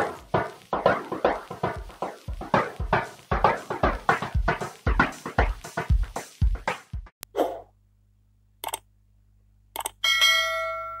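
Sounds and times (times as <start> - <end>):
mouse clicks: 8.6 - 8.8, 9.8 - 10.0.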